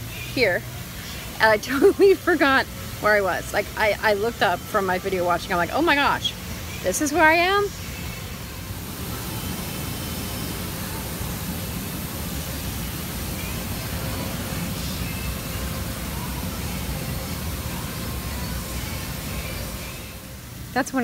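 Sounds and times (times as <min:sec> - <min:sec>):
rushing noise inside car cabin: 0:00.0 - 0:21.0.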